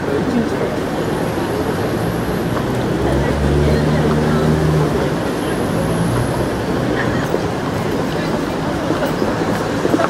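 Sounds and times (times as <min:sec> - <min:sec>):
people talking nearby: 0:00.0 - 0:10.0
traffic rumble: 0:00.0 - 0:10.0.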